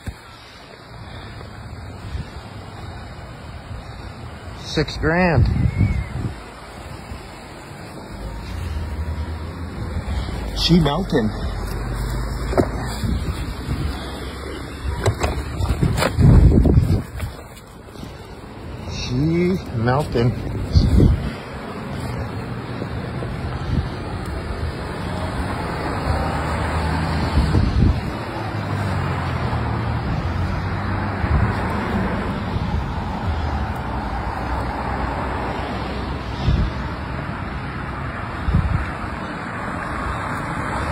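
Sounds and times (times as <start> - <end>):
road traffic passing: 0.0 - 40.9
wind rumble on microphone: 5.3 - 7.4, 11.8 - 18.6, 20.4 - 34.6, 36.1 - 37.5, 38.1 - 39.3.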